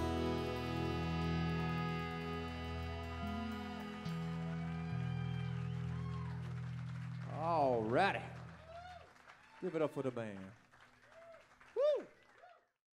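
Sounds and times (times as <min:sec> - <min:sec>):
wavering singing voice: 0:00.0 - 0:04.8
live band sustained chord: 0:00.0 - 0:08.6
bass notes: 0:00.0 - 0:08.8.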